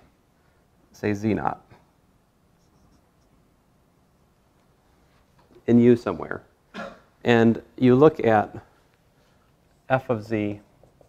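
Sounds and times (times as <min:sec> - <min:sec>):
marker squeaking on whiteboard: 0:02.6 - 0:03.4.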